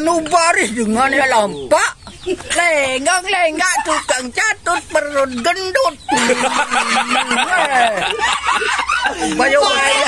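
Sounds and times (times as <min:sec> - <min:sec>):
elderly woman talking: 0:00.0 - 0:06.3, 0:09.2 - 0:10.0
people laughing: 0:03.5 - 0:10.0.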